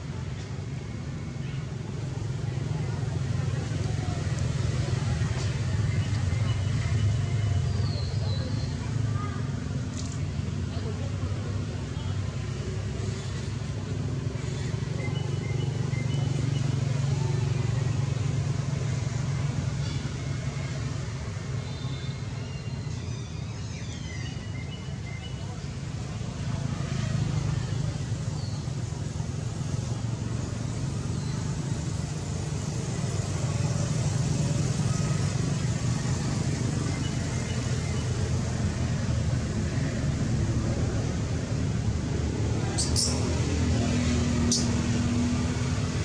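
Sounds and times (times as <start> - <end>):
low rumble of motor traffic: 0.0 - 46.0.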